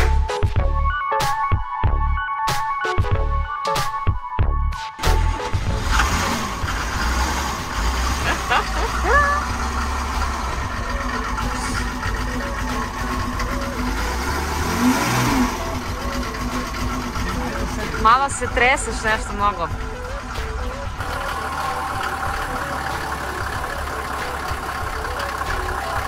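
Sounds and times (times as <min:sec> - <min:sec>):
car engine running: 0:04.4 - 0:26.0.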